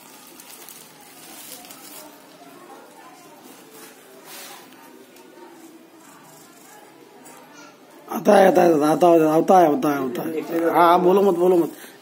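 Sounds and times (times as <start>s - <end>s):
faint distant voices: 0.0s - 12.0s
low background noise: 0.0s - 12.0s.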